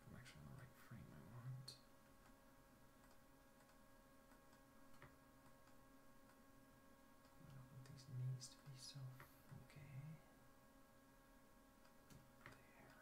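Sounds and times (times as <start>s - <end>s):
faint electrical hum: 0.0s - 13.0s
computer mouse click: 3.0s - 6.4s.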